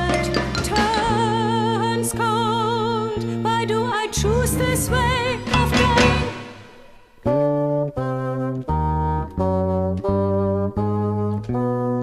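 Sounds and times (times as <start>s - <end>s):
saxophone and brass chords: 0.0s - 12.0s.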